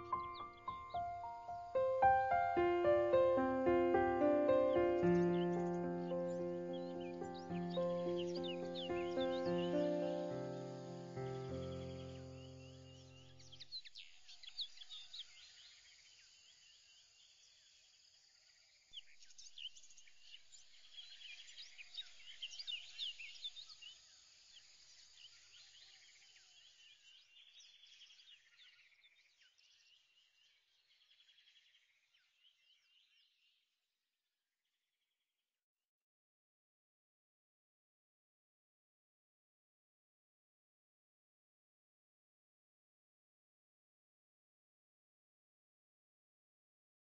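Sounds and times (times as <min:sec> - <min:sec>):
background music: 0:00.0 - 0:13.0
faint birds chirping: 0:00.0 - 0:17.8.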